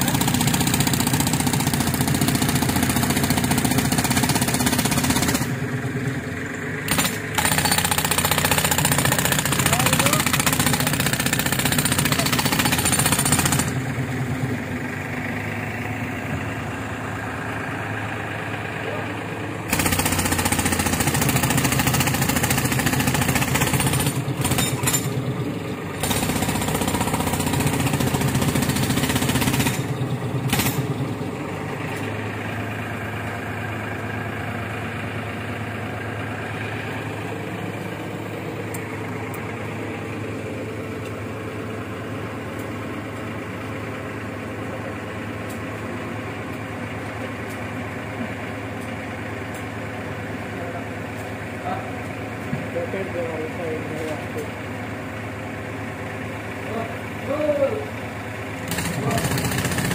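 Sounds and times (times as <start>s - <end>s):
jackhammer breaking rock: 0.0s - 5.5s, 6.9s - 13.8s, 19.7s - 25.2s, 26.0s - 29.9s, 30.5s - 30.9s, 58.7s - 59.9s
compressor engine running: 0.0s - 59.9s.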